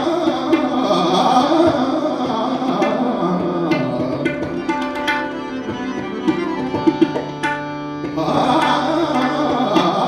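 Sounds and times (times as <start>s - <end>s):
man singing: 0.0s - 4.7s, 8.1s - 10.0s
harmonium: 0.0s - 10.0s
tabla strokes: 0.0s - 10.0s
tanpura drone: 0.0s - 10.0s.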